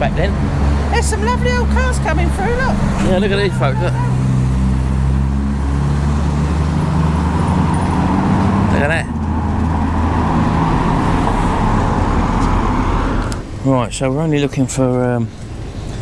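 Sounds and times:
cars driving slowly past: 0.0s - 16.0s.

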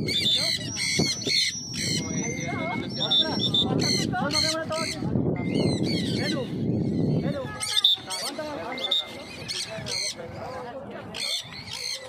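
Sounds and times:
birds chirping and squawking: 0.0s - 12.0s.

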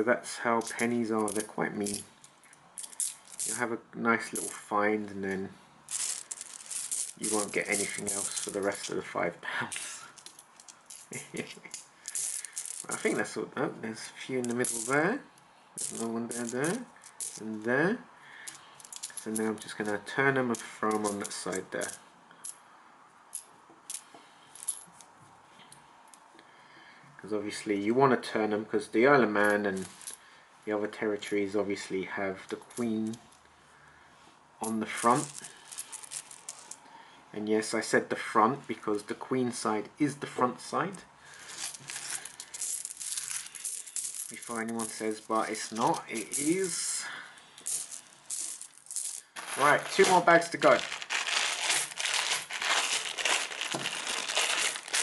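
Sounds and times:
coins clinking: 0.6s - 2.0s, 2.8s - 3.6s, 4.3s - 4.6s, 5.9s - 8.9s, 9.7s - 13.2s, 14.4s - 15.0s, 15.8s - 17.5s, 18.5s - 19.9s, 23.3s - 24.9s, 35.0s - 36.8s, 41.4s - 46.8s, 47.5s - 55.0s.

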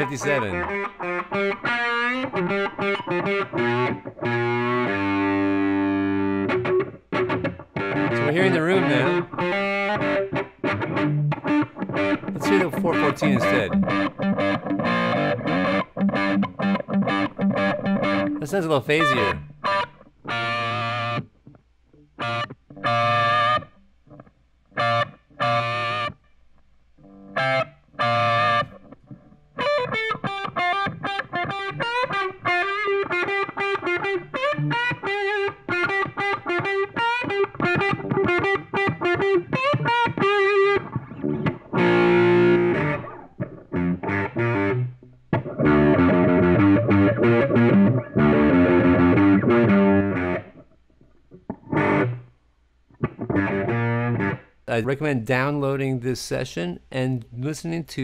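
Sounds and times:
electric guitar through small amp: 0.0s - 26.2s, 27.0s - 52.4s, 53.0s - 54.6s.

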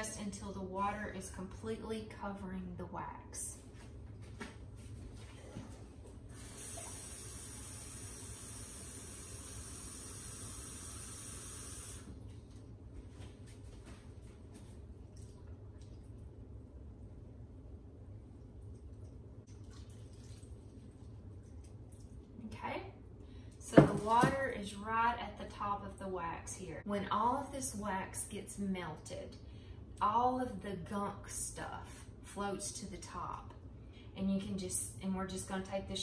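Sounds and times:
water being poured: 18.9s - 22.3s.

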